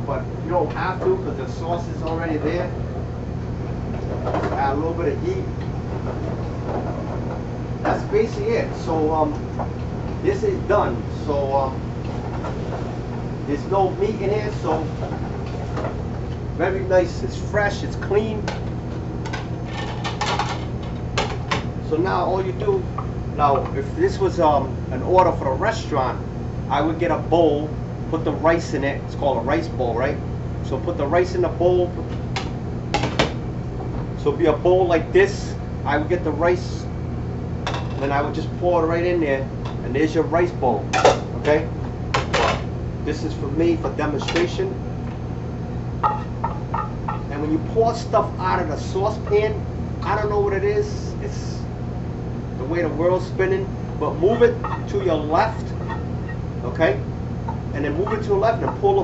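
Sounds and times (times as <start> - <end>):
steady low hum: 0.0 - 59.0
ceramic dishes clinking: 54.6 - 54.9.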